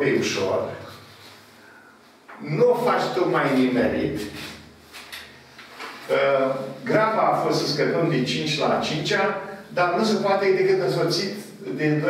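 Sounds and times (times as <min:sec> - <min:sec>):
man speaking: 0:00.0 - 0:01.0, 0:02.4 - 0:04.6, 0:06.1 - 0:12.0.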